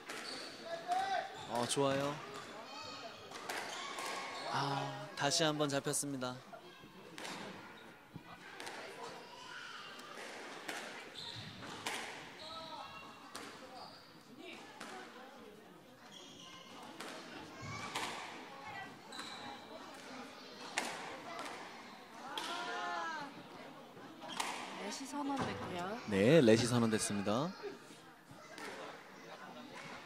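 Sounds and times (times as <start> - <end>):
squash balls hitting rackets and walls: 3.3 - 4.3, 10.2 - 12.2, 20.0 - 21.6.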